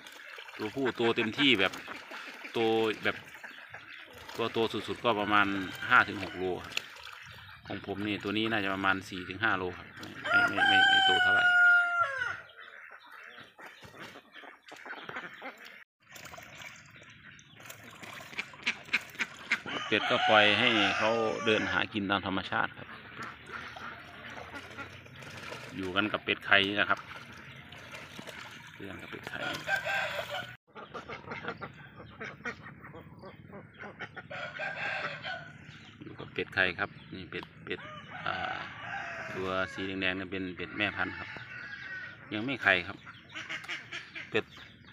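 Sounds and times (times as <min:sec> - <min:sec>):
duck splashing in water: 0:00.0 - 0:21.7, 0:22.8 - 0:32.5
ducks calling: 0:00.0 - 0:44.9
faint chicken clucking: 0:04.6 - 0:06.8, 0:07.6 - 0:15.8, 0:19.5 - 0:25.0, 0:28.9 - 0:44.8
rooster crowing: 0:05.4 - 0:06.4, 0:10.2 - 0:12.5, 0:19.7 - 0:21.8, 0:29.4 - 0:30.6, 0:34.3 - 0:35.5, 0:37.8 - 0:39.7.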